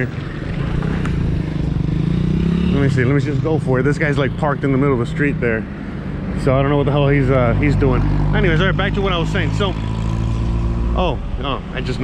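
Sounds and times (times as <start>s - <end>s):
motorcycle engine humming: 0.0s - 12.0s.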